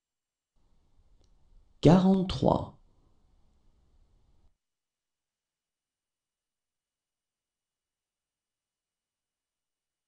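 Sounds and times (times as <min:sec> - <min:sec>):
person saying a number: 0:01.8 - 0:02.8.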